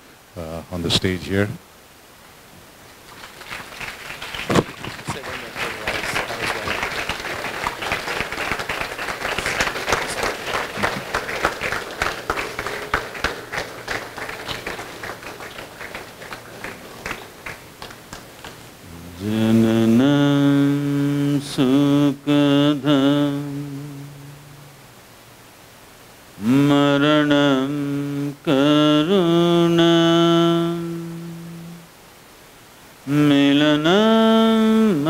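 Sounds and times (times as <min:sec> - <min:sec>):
audience applauding: 0:03.1 - 0:20.2
man chanting in held notes: 0:05.0 - 0:17.6, 0:18.8 - 0:24.8, 0:26.4 - 0:31.9, 0:33.0 - 0:35.0.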